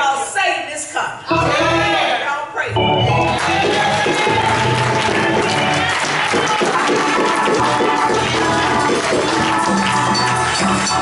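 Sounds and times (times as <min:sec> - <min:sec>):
organ chords: 0:01.3 - 0:02.0, 0:02.7 - 0:11.0
crowd clapping and cheering: 0:02.9 - 0:11.0.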